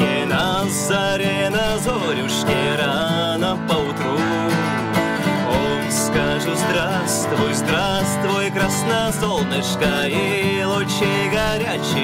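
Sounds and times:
man singing folk song: 0.0s - 12.0s
strummed acoustic guitar: 0.0s - 12.0s.

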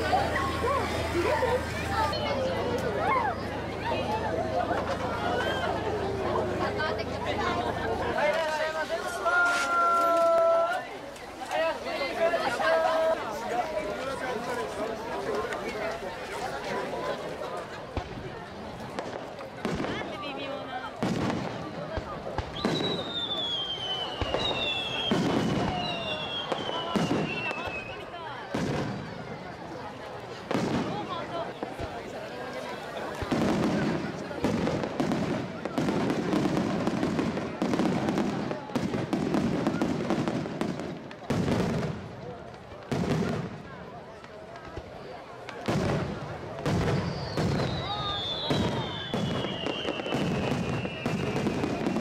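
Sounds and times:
fireworks bursting: 4.6s - 52.0s
falling whistles: 22.5s - 28.0s, 46.9s - 51.9s.

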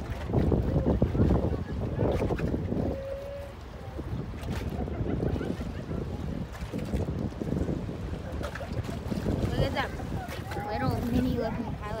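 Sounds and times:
wind buffeting microphone: 0.0s - 12.0s
faint voices talking: 0.4s - 12.0s.

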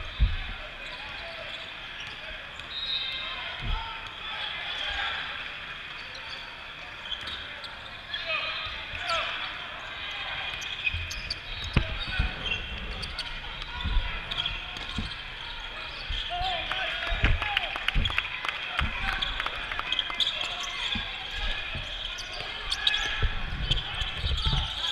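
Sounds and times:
sneakers squeaking: 0.0s - 5.0s, 5.8s - 24.9s
people talking and calling out: 0.0s - 24.9s.

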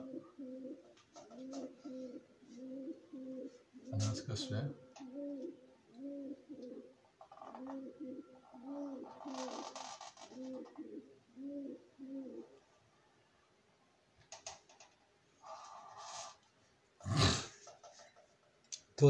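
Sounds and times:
birds cooing: 0.0s - 12.6s.

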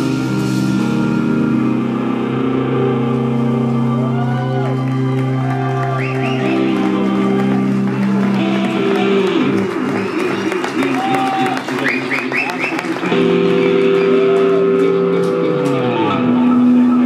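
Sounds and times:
rock band droning chord: 0.0s - 10.9s, 12.9s - 17.0s
crowd applause: 3.3s - 16.4s
crowd whoops and whistles: 3.7s - 14.8s.

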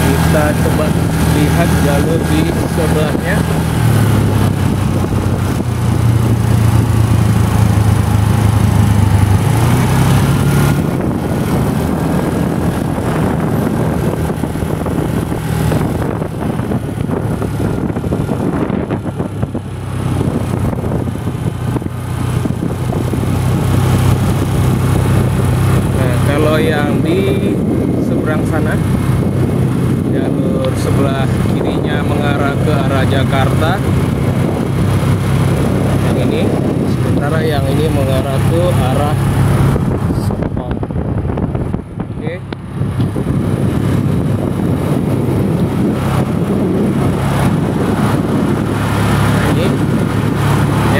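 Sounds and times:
vehicle engine and road noise: 0.0s - 50.9s.

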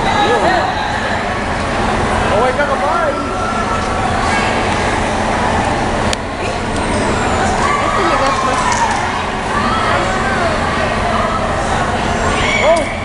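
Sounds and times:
people calling out: 6.4s - 13.0s.

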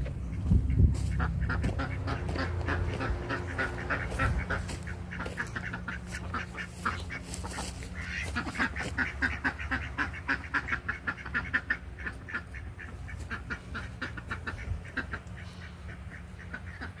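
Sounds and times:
ducks quacking: 0.0s - 17.0s.

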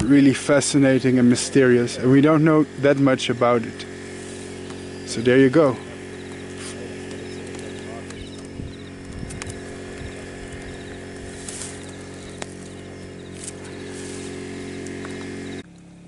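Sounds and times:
fast regular chirping: 0.0s - 15.6s
steady low motor hum: 0.0s - 16.0s.

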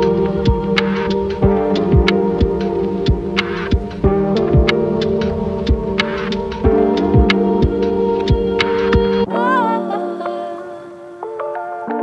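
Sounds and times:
low steady beat: 0.0s - 9.3s
held synth chords: 0.0s - 12.0s.

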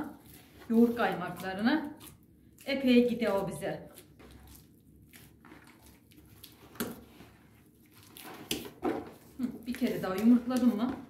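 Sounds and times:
hands kneading dough: 0.0s - 11.0s.

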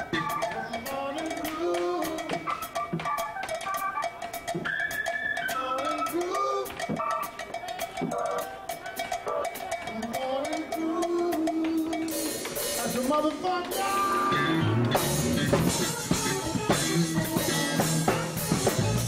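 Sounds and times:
drum kit groove with cymbals: 0.0s - 19.0s
funk band playing: 0.0s - 19.0s.

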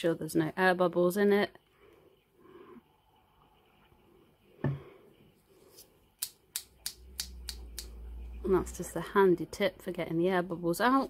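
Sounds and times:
syringe being flicked clicks: 6.2s - 8.0s.

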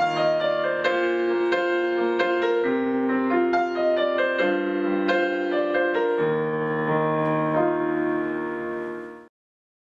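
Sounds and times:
slow piano chords: 0.0s - 9.3s.

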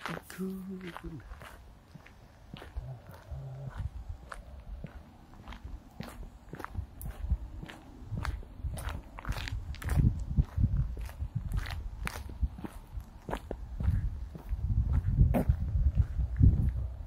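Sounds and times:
footsteps on pavement: 0.0s - 17.0s
low rumble: 1.2s - 17.0s.

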